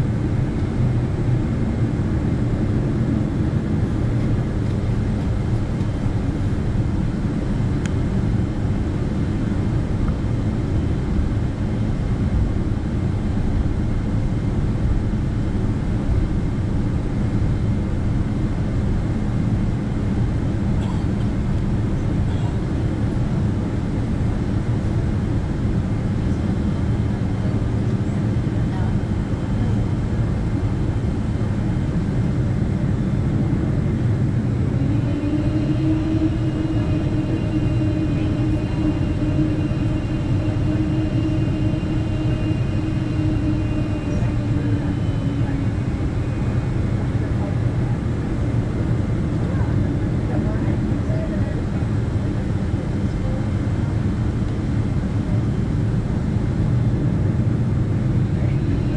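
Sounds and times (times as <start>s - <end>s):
airplane engine rumble: 0.0s - 58.9s
steady hum: 0.0s - 58.9s.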